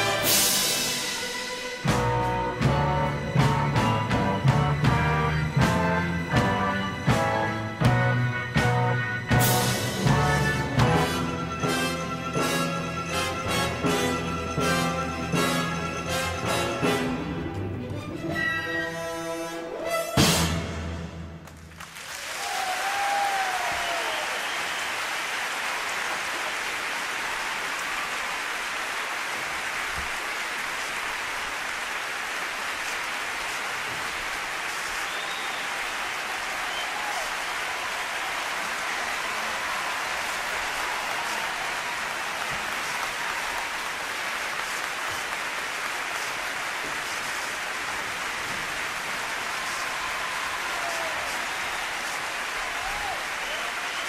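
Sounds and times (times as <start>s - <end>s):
audience applauding: 0.0s - 17.2s, 21.4s - 54.0s.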